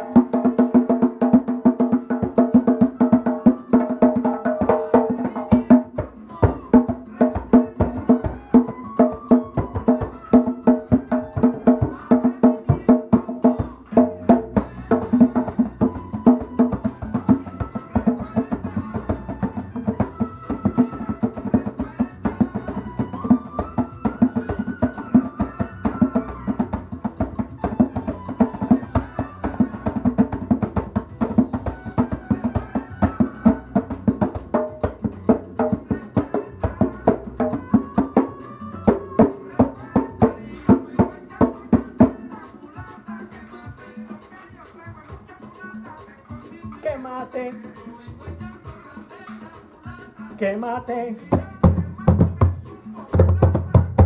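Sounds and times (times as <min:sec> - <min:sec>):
recorded band music: 0:00.0 - 0:53.1
hand drumming: 0:00.0 - 0:54.0.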